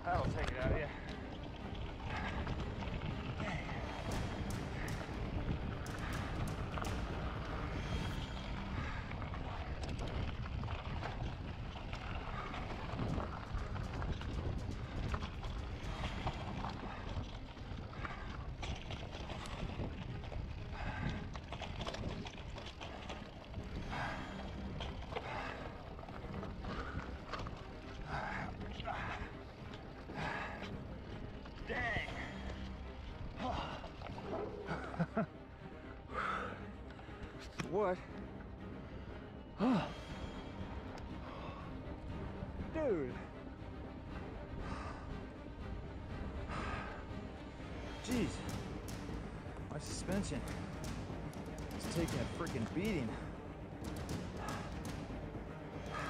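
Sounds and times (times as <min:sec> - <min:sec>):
wind buffeting microphone: 0:00.0 - 0:22.6.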